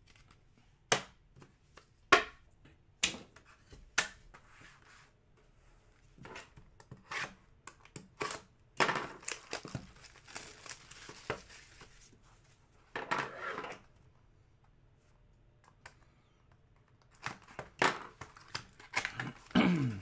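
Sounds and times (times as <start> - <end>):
shrink wrap tearing and crinkling: 9.0 - 12.0.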